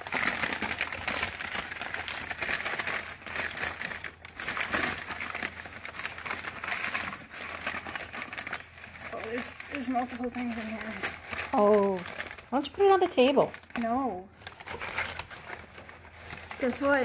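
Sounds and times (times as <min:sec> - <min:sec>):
packing paper crackling and rustling: 0:00.0 - 0:17.0.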